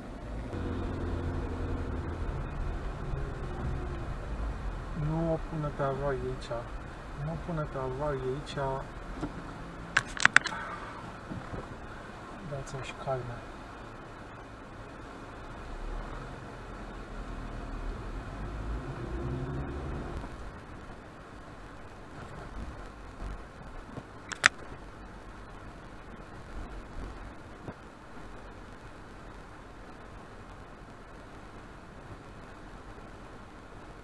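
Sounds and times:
car rumble inside cabin: 0:00.0 - 0:13.3, 0:14.2 - 0:20.8
sharp click: 0:10.0 - 0:10.6, 0:24.3 - 0:24.6.

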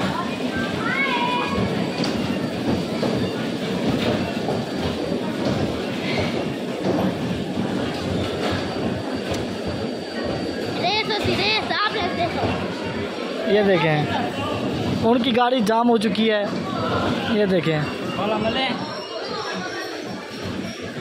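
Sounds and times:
bumper cars mechanical din: 0:00.0 - 0:21.0.

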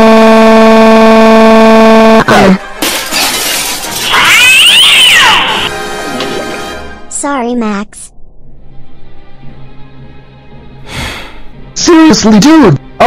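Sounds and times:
loud held tone: 0:00.0 - 0:02.3
screeching cat-like yowl: 0:04.0 - 0:05.7
faint background music: 0:05.7 - 0:13.0.

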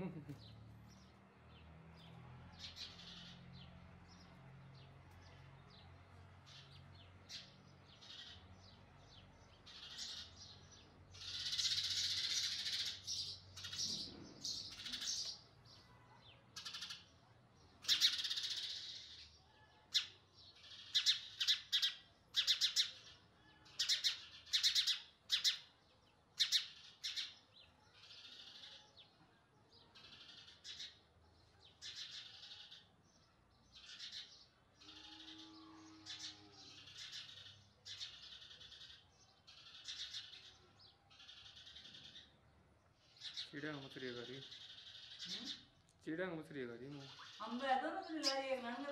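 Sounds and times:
baby sparrow harsh begging calls: 0:06.5 - 0:08.5, 0:09.6 - 0:17.2, 0:17.8 - 0:25.7, 0:26.4 - 0:29.1, 0:31.7 - 0:32.9, 0:43.0 - 0:45.8, 0:46.9 - 0:48.6.

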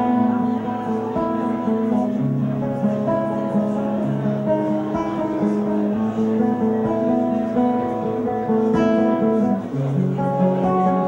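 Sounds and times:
fingerstyle acoustic guitar: 0:00.0 - 0:11.0.

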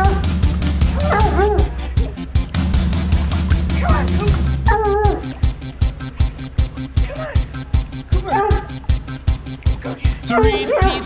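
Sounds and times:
background music with beat: 0:00.0 - 0:11.0
dog barking in yelps: 0:01.0 - 0:01.7, 0:03.8 - 0:05.3, 0:08.2 - 0:08.8.

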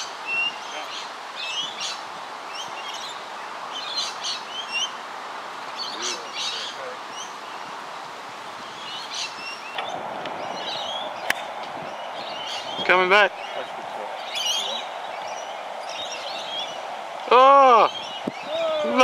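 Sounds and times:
birds chirping: 0:00.0 - 0:19.0
steady outdoor background noise: 0:00.0 - 0:19.0.

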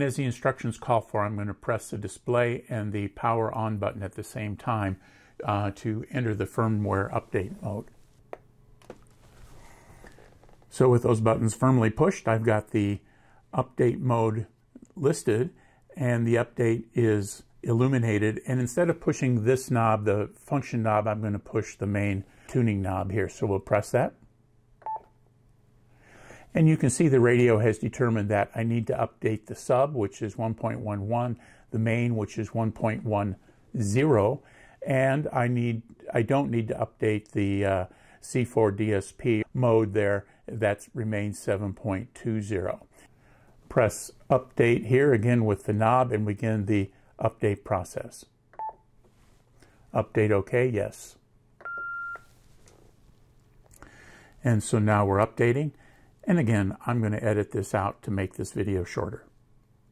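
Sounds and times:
low room noise: 0:00.0 - 0:59.9.

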